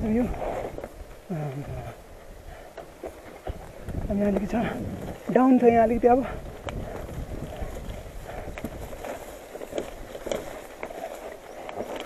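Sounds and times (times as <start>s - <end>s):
bike tyres rumbling over trail: 0.0s - 12.0s
wind on microphone: 0.0s - 12.0s
bike clicks and rattles: 6.6s - 12.0s.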